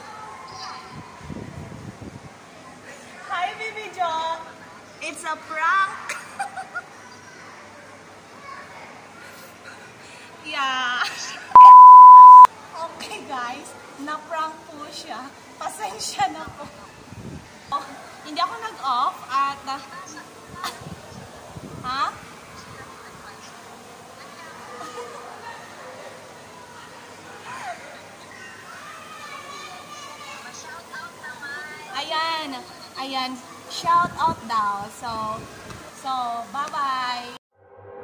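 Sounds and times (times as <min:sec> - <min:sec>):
low steady background noise: 0:00.0 - 0:37.4
censor bleep: 0:11.6 - 0:12.5.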